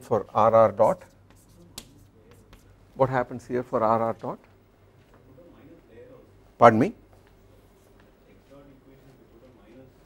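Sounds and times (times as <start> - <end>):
chalk scraping on blackboard: 0.8 - 2.7
chalk tapping on blackboard: 0.8 - 2.8.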